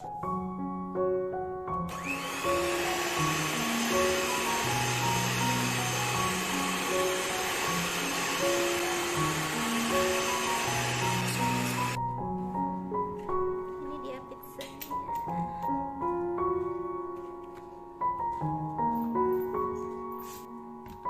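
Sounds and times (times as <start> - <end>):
electric hand mixer running: 1.9 - 12.0.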